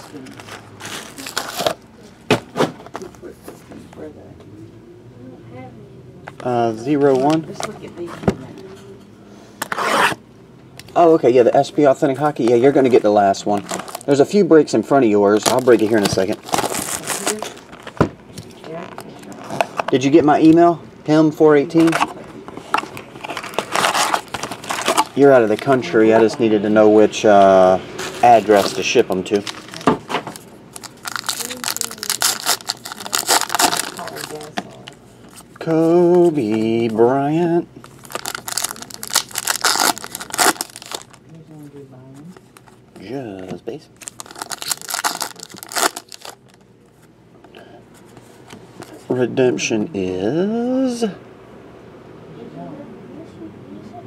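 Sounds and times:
foil wrapper tearing and crinkling: 0.0s - 1.8s, 13.5s - 14.2s, 15.3s - 18.0s, 23.2s - 25.6s, 28.6s - 34.7s, 37.9s - 41.2s, 44.0s - 46.6s.

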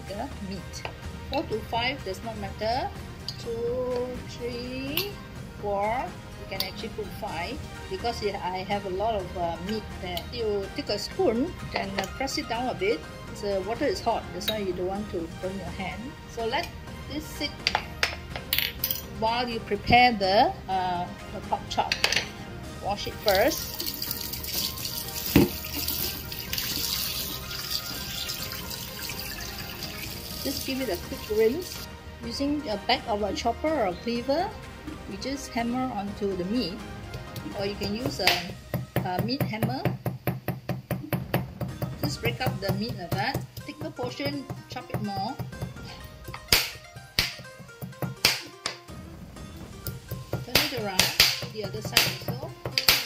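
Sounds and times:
background music: 0.0s - 53.0s
tap water running into sink: 23.2s - 31.8s
water splashing over meat: 23.3s - 31.4s
cleaver hammering meat on board: 50.4s - 53.0s.

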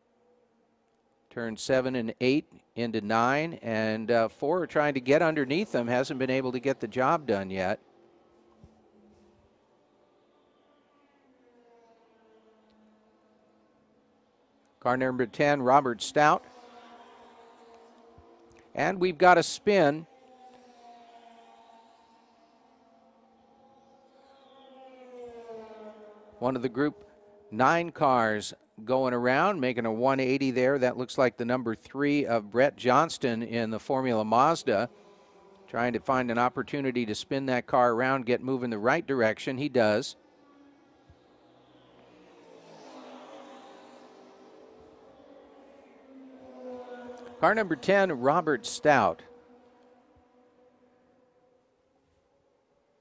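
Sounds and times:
distant race car engine passing: 0.0s - 53.0s.

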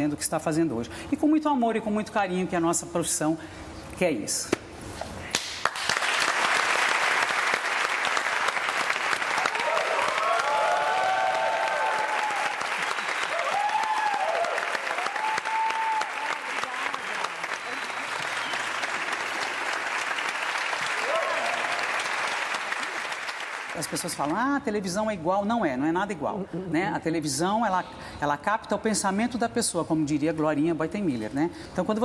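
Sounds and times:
audience applauding: 5.3s - 24.3s.

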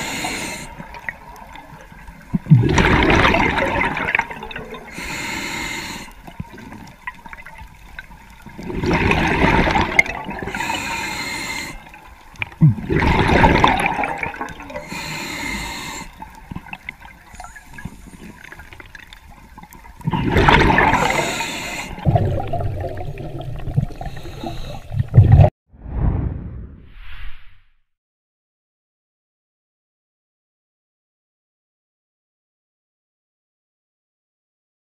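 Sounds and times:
regulator hiss on inhale: 0.0s - 0.8s, 4.9s - 6.3s, 10.5s - 12.0s, 14.8s - 16.3s, 21.0s - 22.0s, 24.0s - 25.0s
exhaled bubbles rushing: 2.4s - 4.9s, 8.6s - 10.5s, 12.6s - 14.8s, 20.0s - 21.3s, 22.0s - 25.5s.

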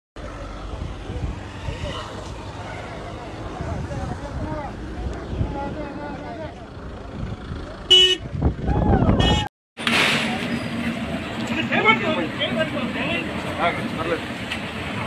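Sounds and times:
crowd voices: 0.2s - 7.9s
car horn tooting: 7.9s - 8.3s, 9.2s - 9.5s.

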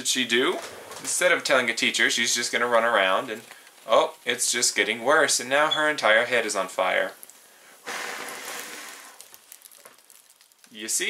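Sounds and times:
person blowing hard: 7.6s - 9.2s.

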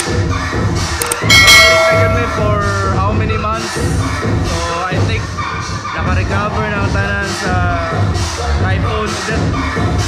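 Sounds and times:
background music: 0.0s - 10.0s
quick clicks: 1.0s - 1.3s
bell ringing: 1.3s - 3.0s.

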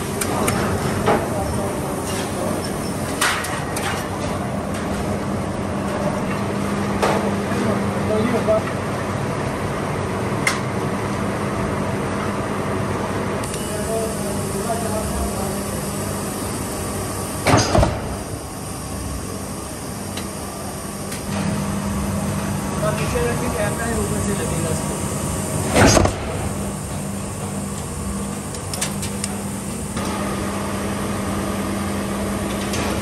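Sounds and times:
stamping press humming: 13.4s - 33.0s.

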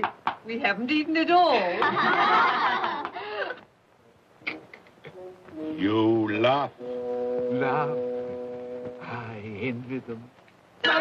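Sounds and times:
people laughing: 1.8s - 3.6s.

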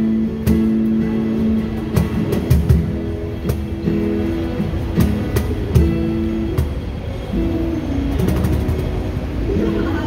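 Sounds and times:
city street rumble: 0.0s - 10.0s
soft guitar notes: 0.0s - 10.0s.

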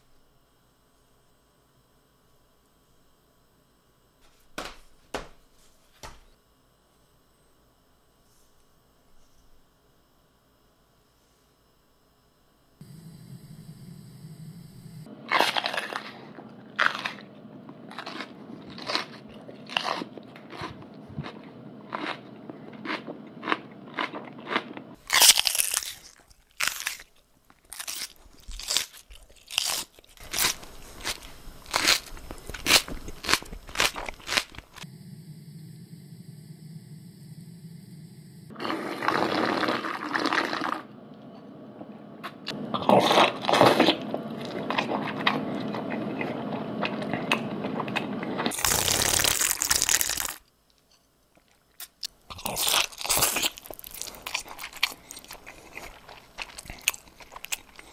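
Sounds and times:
crunchy food chewing: 15.1s - 34.9s, 42.5s - 57.9s.

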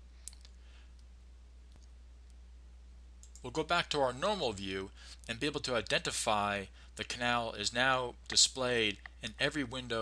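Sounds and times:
low electrical hum: 0.0s - 10.0s
computer mouse click: 3.2s - 3.4s.

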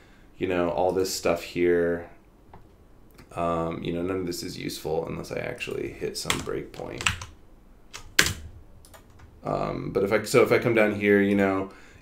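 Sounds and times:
computer keyboard clicks: 6.2s - 7.3s, 7.9s - 9.3s.

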